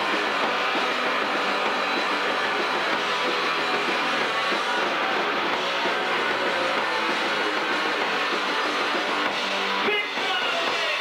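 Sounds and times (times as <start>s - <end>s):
distorted electric guitar: 0.0s - 11.0s
drums: 0.0s - 11.0s.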